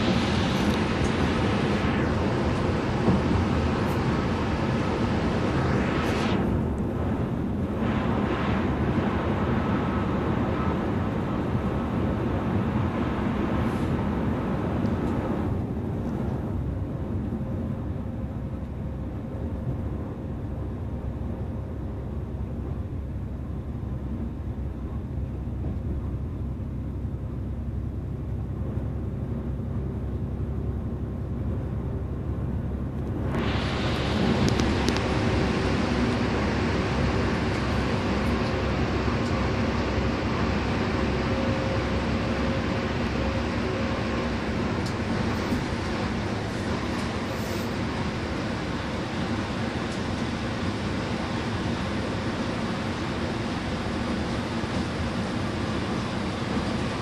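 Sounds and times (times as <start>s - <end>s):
bus engine and tyre drone: 0.0s - 57.0s.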